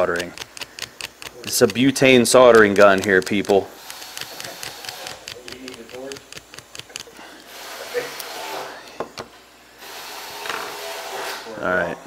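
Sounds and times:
soldering gun gas hiss: 0.0s - 8.9s
soldering gun igniter clicks: 2.6s - 7.1s.

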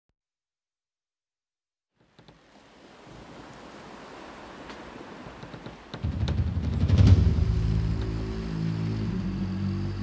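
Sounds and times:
wind: 1.9s - 10.0s
sea waves rushing: 2.2s - 10.0s.

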